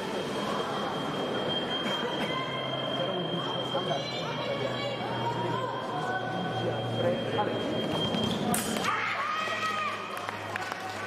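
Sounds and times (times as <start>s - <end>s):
thin high-pitched tone: 0.0s - 8.8s
fencing hall background noise: 0.0s - 11.0s.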